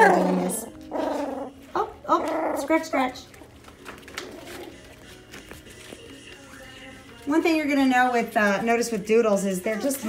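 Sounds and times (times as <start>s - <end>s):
puppies whimpering: 0.0s - 5.2s.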